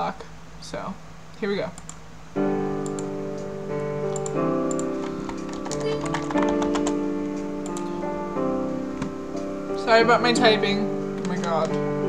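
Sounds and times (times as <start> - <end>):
sustained keyboard chords: 1.8 - 12.0
computer keyboard typing clicks: 2.8 - 3.1, 4.1 - 7.0, 7.6 - 7.9, 11.2 - 11.8.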